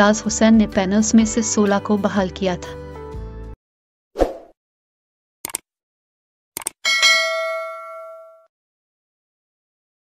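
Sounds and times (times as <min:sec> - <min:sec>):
quick double clicks: 0:05.4 - 0:05.6, 0:06.6 - 0:06.8
notification bell ding: 0:06.9 - 0:08.5.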